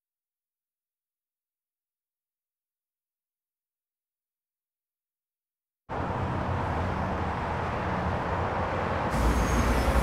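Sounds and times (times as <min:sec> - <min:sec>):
street noise hiss: 0:06.1 - 0:10.0.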